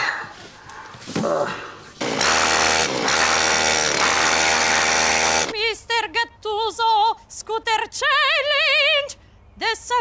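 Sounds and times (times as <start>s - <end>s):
scooter engine buzzing at high revs: 2.0s - 5.5s.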